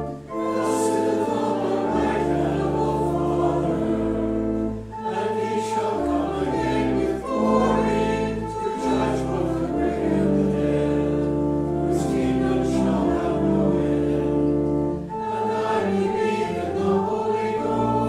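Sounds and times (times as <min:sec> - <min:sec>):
organ playing chords: 0:00.0 - 0:18.0.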